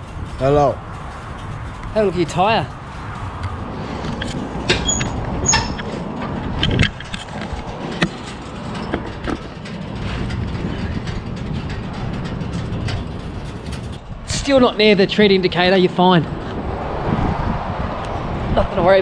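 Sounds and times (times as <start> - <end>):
handling clicks and knocks: 3.4 - 14.2
low steady rumble: 4.2 - 15.1.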